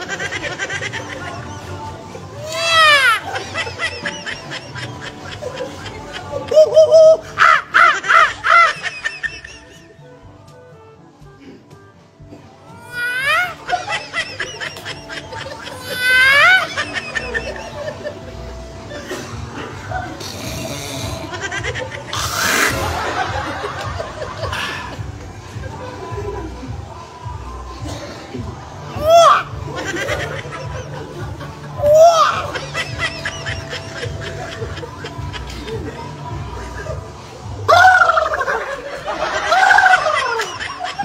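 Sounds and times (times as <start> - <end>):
faint background music: 0.0 - 41.0.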